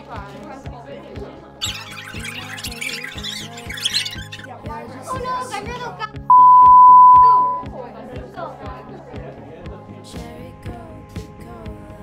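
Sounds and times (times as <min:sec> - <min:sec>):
censor bleep: 0:06.3 - 0:07.7.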